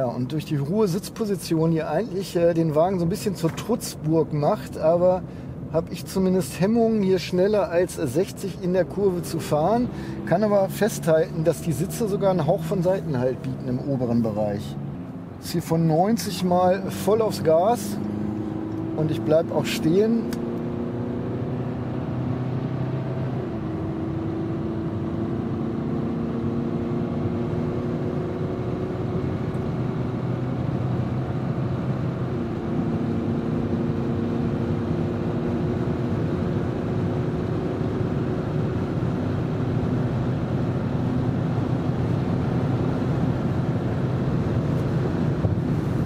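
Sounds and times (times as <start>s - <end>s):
road and wind noise: 0.0s - 46.0s
car engine accelerating: 2.7s - 46.0s.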